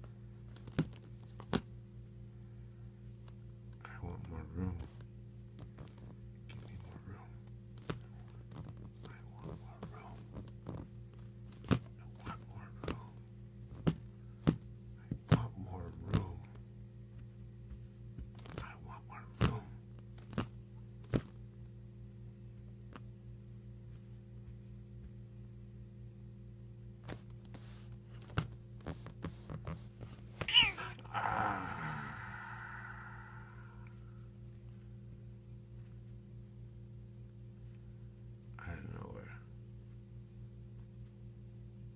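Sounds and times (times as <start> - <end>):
steady low hum: 0.0 - 41.9
cat paws tapping on skin: 7.7 - 10.9, 13.7 - 16.3, 17.2 - 18.7
cat meowing: 30.4 - 31.1.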